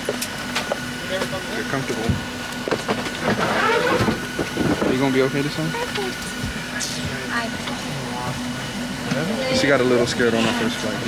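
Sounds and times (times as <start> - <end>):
airliner cabin drone: 0.0 - 11.0.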